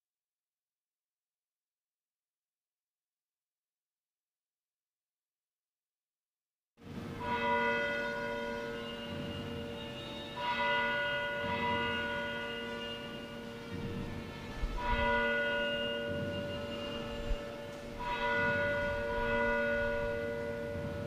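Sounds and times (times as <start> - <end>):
church bell tolling: 6.8 - 21.0.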